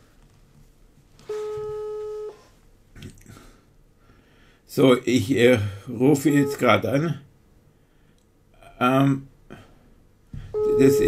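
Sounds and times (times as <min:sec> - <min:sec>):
telephone ringback tone: 0:01.3 - 0:02.4, 0:10.6 - 0:11.0.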